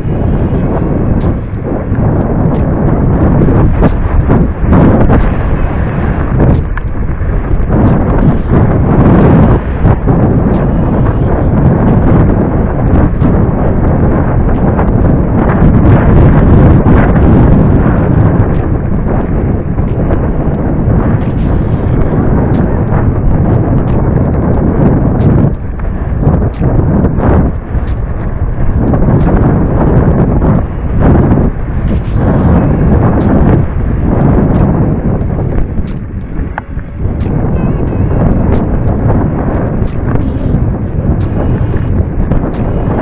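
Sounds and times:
bike clicks and rattles: 0:00.0 - 0:32.1, 0:32.8 - 0:37.6
wind buffeting microphone: 0:00.0 - 0:43.0.

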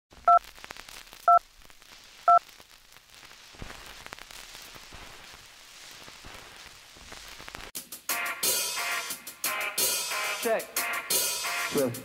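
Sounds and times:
crackle with clicks: 0:00.1 - 0:07.8.

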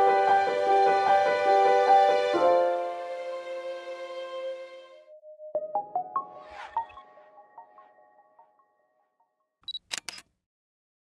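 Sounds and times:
outro music: 0:02.0 - 0:08.7
camera shutter clicks: 0:09.7 - 0:10.3.

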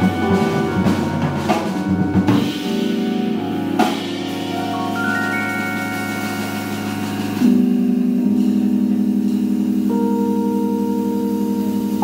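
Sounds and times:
electric keyboard chords with tremolo: 0:00.0 - 0:12.0.

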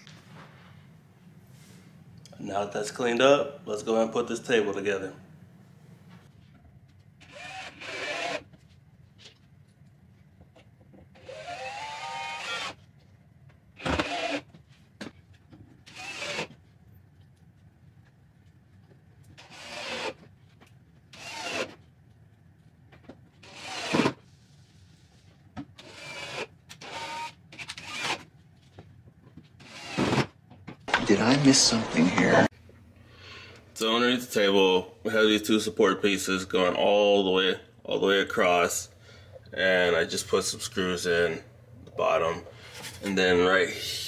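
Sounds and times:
cordless drill driving screws: 0:07.2 - 0:08.5, 0:11.2 - 0:12.8, 0:13.8 - 0:14.5, 0:15.9 - 0:16.5, 0:19.4 - 0:20.2, 0:21.1 - 0:21.7, 0:23.4 - 0:24.2, 0:25.8 - 0:28.2, 0:29.6 - 0:30.3.

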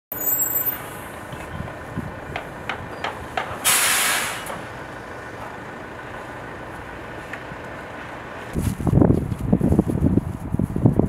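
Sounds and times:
street background noise: 0:00.1 - 0:11.0
loud hiss: 0:03.6 - 0:04.6.

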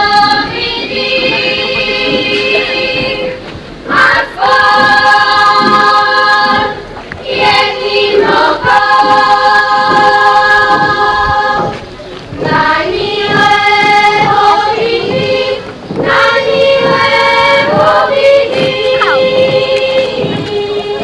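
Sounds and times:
choir singing a folk song: 0:00.0 - 0:21.0.

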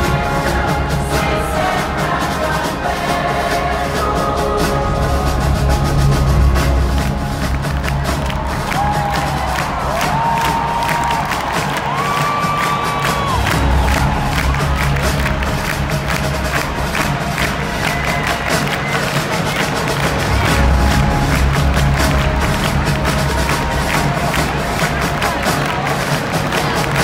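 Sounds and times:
crowd cheering: 0:00.0 - 0:27.0
live band with drums bass and brass: 0:00.0 - 0:27.0.

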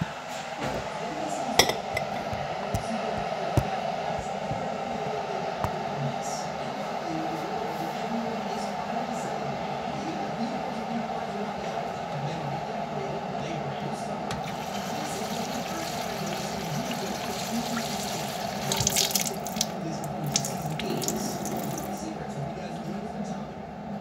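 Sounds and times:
tap water splashing into cup: 0:14.3 - 0:22.0.

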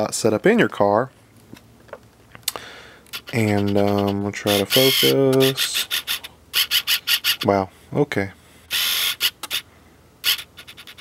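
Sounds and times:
fingers scratching cardboard box: 0:03.2 - 0:06.1.

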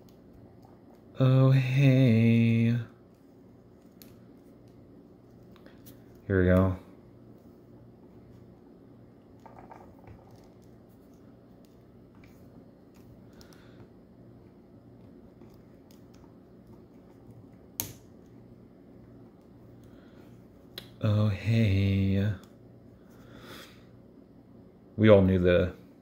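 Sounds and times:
low steady hum: 0:00.0 - 0:26.0.

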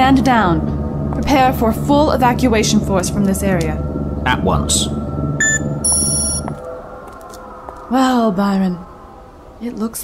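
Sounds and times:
voice: 0:00.0 - 0:05.0, 0:07.9 - 0:08.8, 0:09.6 - 0:10.0
low rumble: 0:00.0 - 0:09.8
high electronic ringing tone: 0:05.4 - 0:06.5.

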